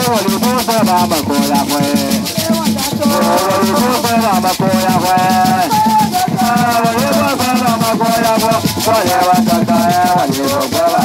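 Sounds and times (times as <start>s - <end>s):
gourd rattles shaking: 0.0s - 11.0s
women singing together: 3.0s - 11.0s.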